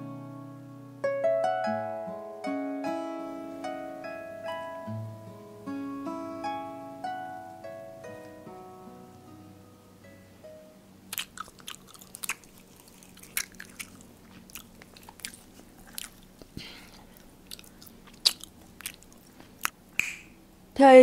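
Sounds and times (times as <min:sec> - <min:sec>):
crunchy pie crust chewing: 0:11.1 - 0:19.8.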